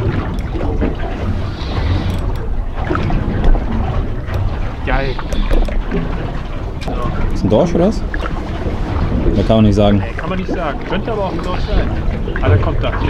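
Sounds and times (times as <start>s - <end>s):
wind and water rumble: 0.0s - 13.0s
wind buffeting microphone: 0.0s - 13.0s.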